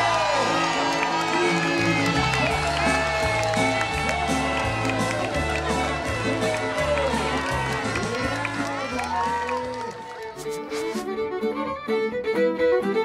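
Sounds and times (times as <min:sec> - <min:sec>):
guitar: 0:00.0 - 0:13.0
fiddle tune: 0:00.2 - 0:13.0
bass line: 0:01.5 - 0:09.5.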